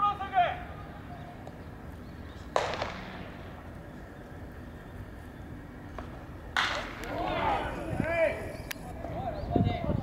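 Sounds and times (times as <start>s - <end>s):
sharp crack with echo: 2.5s - 3.6s, 6.0s - 7.2s.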